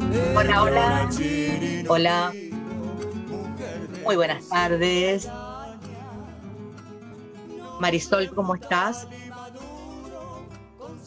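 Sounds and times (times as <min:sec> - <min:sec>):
quiet background guitar music: 0:00.0 - 0:11.0.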